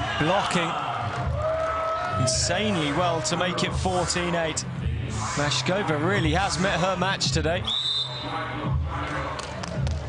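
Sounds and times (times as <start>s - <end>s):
referee's whistle: 7.6s - 8.5s.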